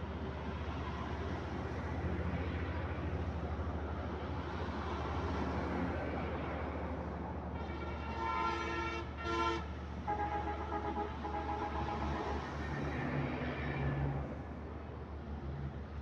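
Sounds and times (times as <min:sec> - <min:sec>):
low rumble of engines: 0:00.0 - 0:16.0
horns blasting: 0:07.6 - 0:14.2.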